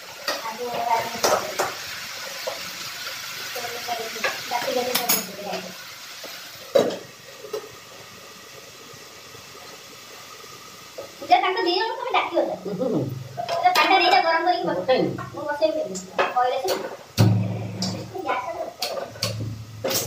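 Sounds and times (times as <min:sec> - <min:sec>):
vegetables sizzling in a pan: 0:00.0 - 0:20.0.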